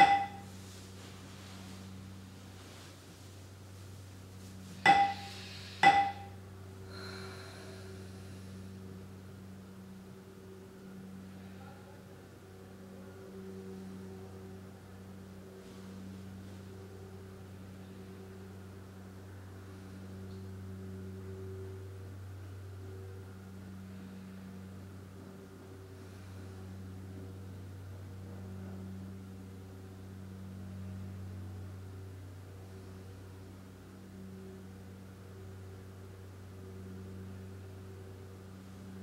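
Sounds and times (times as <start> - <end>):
held tones: 0.0 - 0.5, 4.9 - 6.3
meditation bell ringing: 0.0 - 0.6, 4.9 - 6.4
steady low hum: 0.0 - 39.0.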